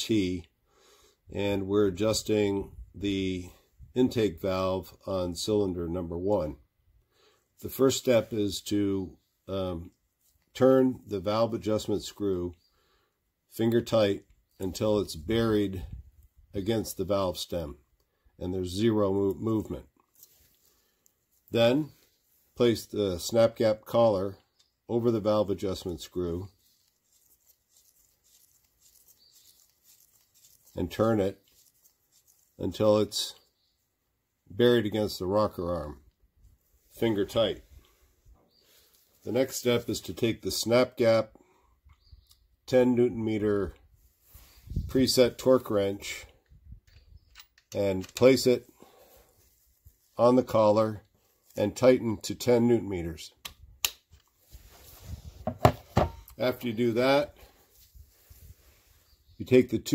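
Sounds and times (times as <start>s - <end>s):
tool handling noise: 55.4s - 56.4s.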